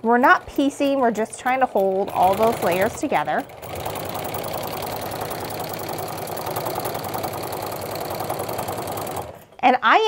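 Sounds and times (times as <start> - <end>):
sewing machine running: 0.1 - 9.7.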